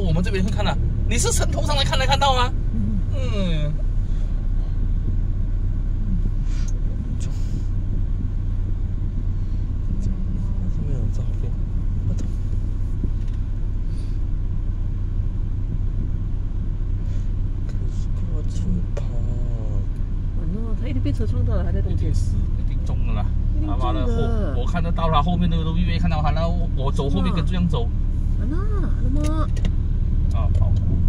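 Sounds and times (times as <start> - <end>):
car engine running: 0.0 - 31.0.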